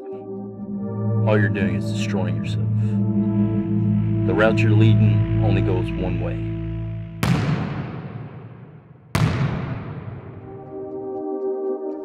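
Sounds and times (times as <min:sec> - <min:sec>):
deep cinematic boom: 0:00.5 - 0:10.7.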